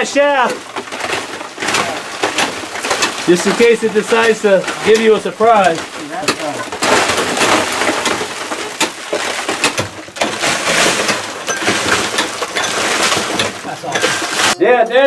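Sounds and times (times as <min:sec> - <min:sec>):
sharp knocks: 0:00.0 - 0:14.6
steel tool chipping rock: 0:00.0 - 0:14.6.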